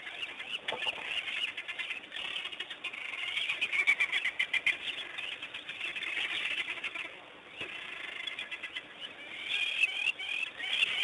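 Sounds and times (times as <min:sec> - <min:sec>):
high-pitched animal chirping: 0:00.0 - 0:11.0.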